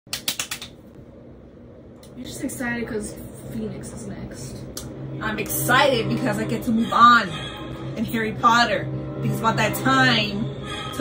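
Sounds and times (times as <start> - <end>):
low room hum: 0.1 - 11.0.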